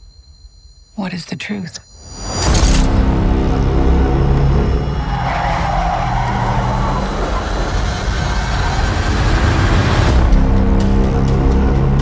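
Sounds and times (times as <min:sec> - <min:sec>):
car driving with low rumble: 0:02.9 - 0:12.0.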